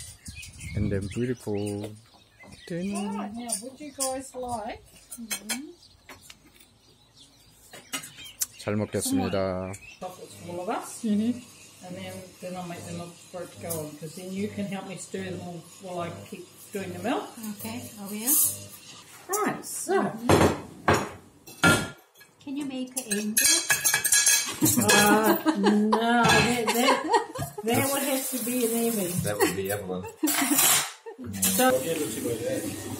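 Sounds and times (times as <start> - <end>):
cutlery and plates clinking: 2.9 - 5.8, 7.7 - 8.3, 13.6 - 14.0, 17.0 - 19.5, 20.9 - 25.5, 26.2 - 32.6
teaspoon clinking ceramic mugs: 23.0 - 25.4, 29.1 - 32.0.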